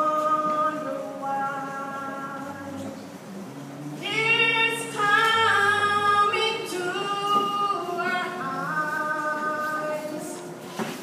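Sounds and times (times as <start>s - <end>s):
woman singing unaccompanied: 0.0s - 3.0s, 4.0s - 10.6s.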